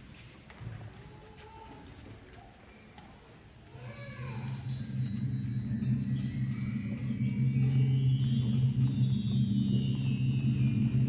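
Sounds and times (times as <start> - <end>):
concert band holding low chord: 4.5 - 11.0.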